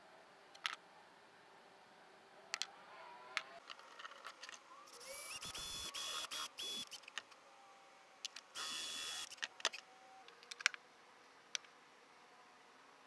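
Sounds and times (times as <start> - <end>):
small clicks and knocks: 0.5 - 0.8, 2.5 - 2.7, 3.4 - 4.6, 6.9 - 7.4, 9.3 - 10.8
cordless drill motor whining: 4.8 - 7.2, 8.6 - 9.8.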